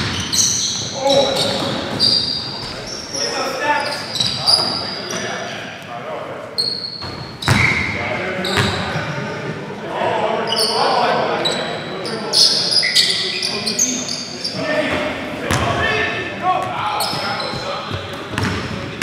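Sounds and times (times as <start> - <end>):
sneakers squeaking on gym floor: 0.0 - 5.6, 6.6 - 9.0, 10.5 - 15.7, 16.6 - 19.0
players calling out: 6.6 - 19.0.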